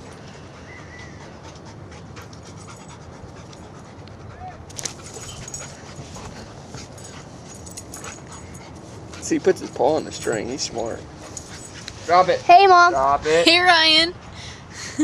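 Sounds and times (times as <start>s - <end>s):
dog panting: 0.0s - 12.4s
steady background noise: 0.0s - 15.0s.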